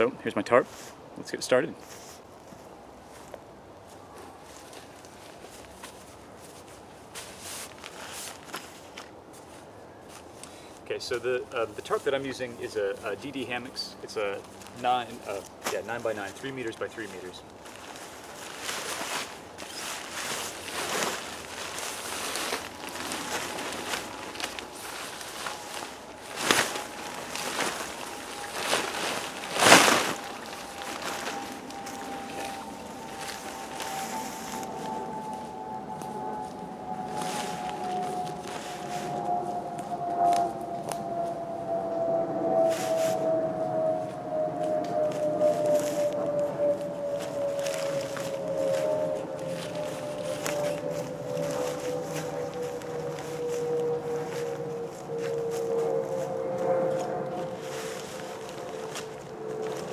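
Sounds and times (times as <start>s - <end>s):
tarp rustling and crackling: 1.9s - 10.6s, 11.7s - 41.2s, 45.1s - 59.9s
drone falling in pitch: 20.2s - 59.9s
fabric snapping: 28.5s - 31.4s.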